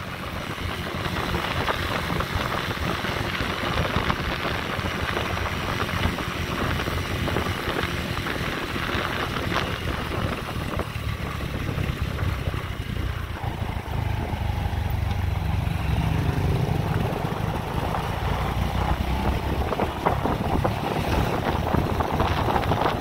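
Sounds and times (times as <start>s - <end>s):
motorbike engine running: 0.0s - 23.0s
wind rushing over microphone: 0.0s - 23.0s.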